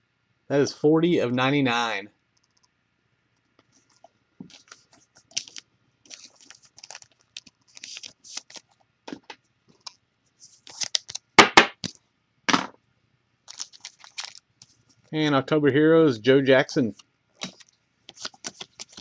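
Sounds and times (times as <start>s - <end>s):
card wrappers crinkling: 3.8s - 8.8s, 9.8s - 11.4s, 13.4s - 14.9s, 17.4s - 19.0s
foil wrapper crackling: 4.6s - 8.8s, 13.4s - 14.6s.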